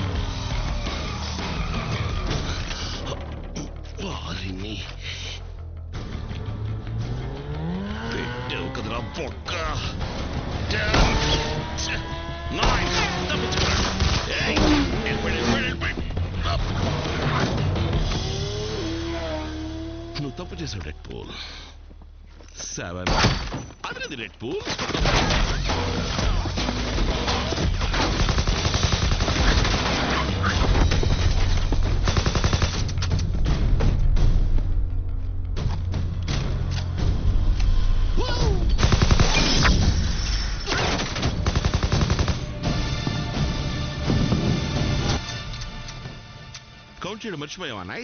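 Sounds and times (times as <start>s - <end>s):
film soundtrack: 0.0s - 48.0s
automatic rifle fire: 27.9s - 30.3s, 32.0s - 32.9s, 38.8s - 39.7s, 40.9s - 42.6s.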